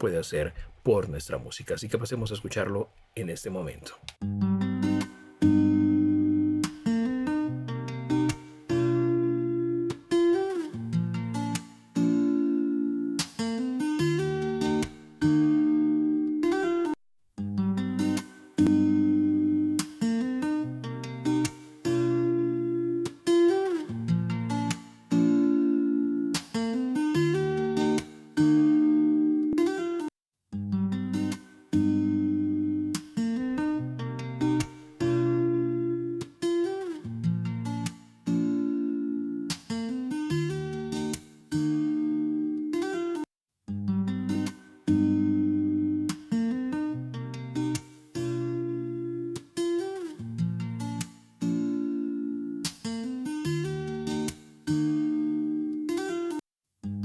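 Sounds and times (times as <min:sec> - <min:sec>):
acoustic guitar playing chords: 0:00.0 - 0:57.0.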